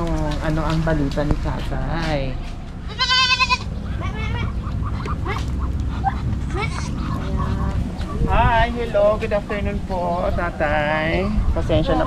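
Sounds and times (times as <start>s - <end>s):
goat bleating: 2.8s - 5.5s, 6.4s - 7.5s.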